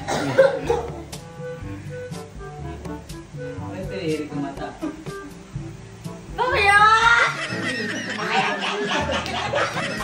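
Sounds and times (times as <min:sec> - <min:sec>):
group laughing: 0:07.2 - 0:10.0.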